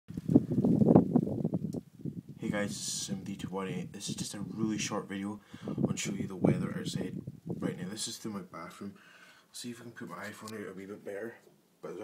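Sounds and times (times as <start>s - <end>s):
wind buffeting microphone: 0.1s - 8.7s.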